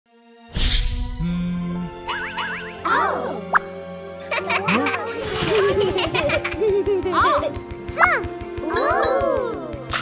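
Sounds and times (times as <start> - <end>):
cartoon background music: 0.1 - 10.0.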